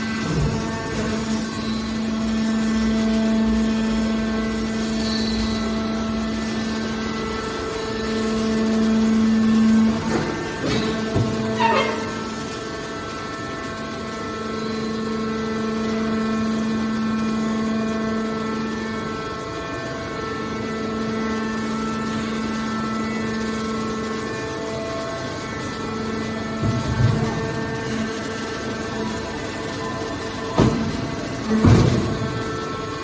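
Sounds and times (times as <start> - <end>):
hydraulic pump humming: 0.0 - 33.0.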